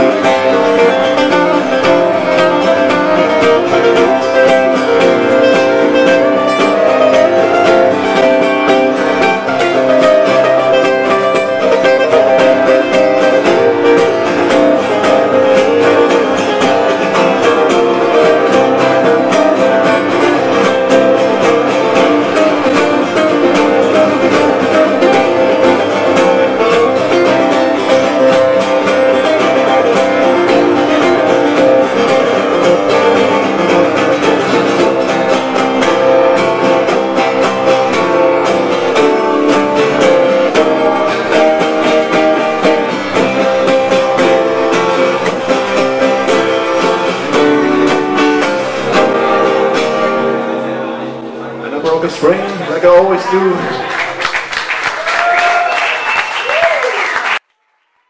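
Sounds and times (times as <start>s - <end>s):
acoustic guitars strummed and picked: 0.0s - 56.6s.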